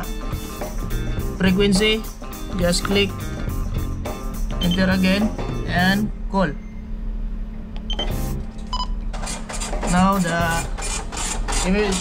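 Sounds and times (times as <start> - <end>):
low electrical hum: 3.2 - 12.0
electronic beeps: 4.6 - 5.1, 7.9 - 9.0.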